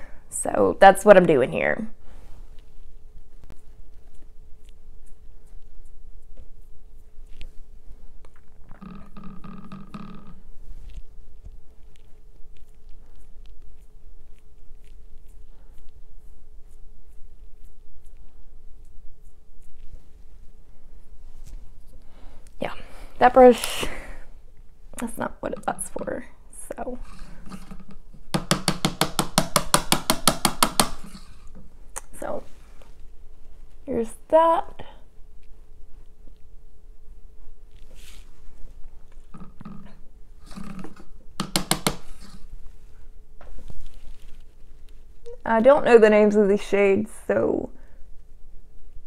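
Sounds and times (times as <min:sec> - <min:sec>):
brush tapping on hard surface: 0:27.0 - 0:31.7, 0:40.5 - 0:42.4.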